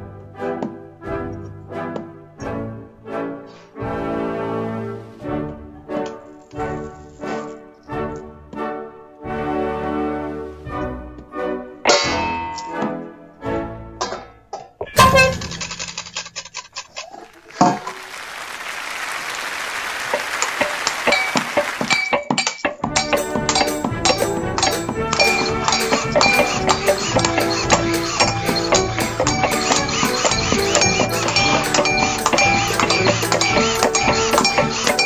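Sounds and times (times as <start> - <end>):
sharp crash: 11.9 - 13.1
hissing scraping noise: 23.7 - 35.0.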